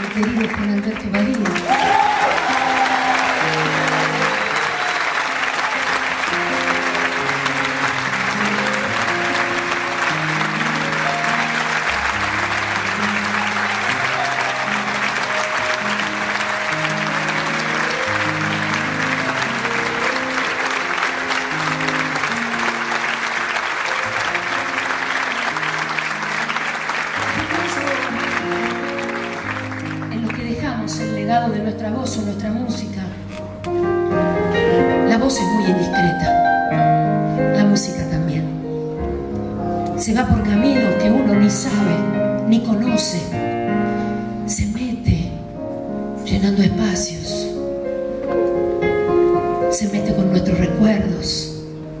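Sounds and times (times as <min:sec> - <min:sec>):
audience applauding: 0:00.0 - 0:31.1
slow low instrumental music: 0:01.6 - 0:52.0.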